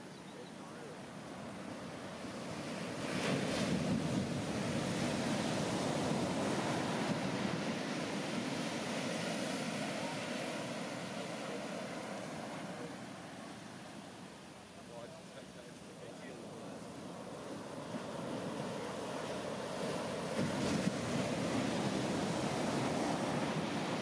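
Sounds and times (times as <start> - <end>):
wave crashing: 1.4 - 14.0, 15.3 - 24.0
whitewater rushing: 8.0 - 13.4.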